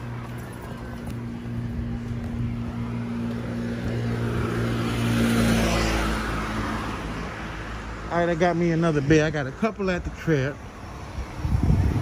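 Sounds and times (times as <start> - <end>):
vehicle passing by: 0.0 - 9.5.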